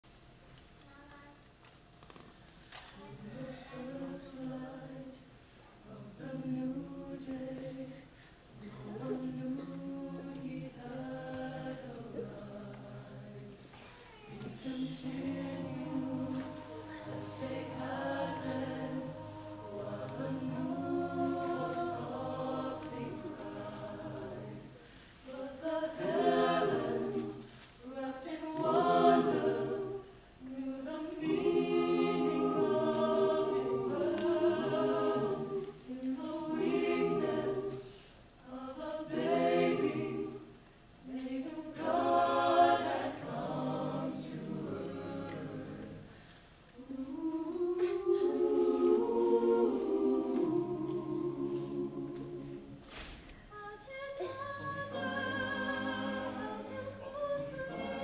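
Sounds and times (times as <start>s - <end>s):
choir singing a cappella: 3.0s - 58.0s.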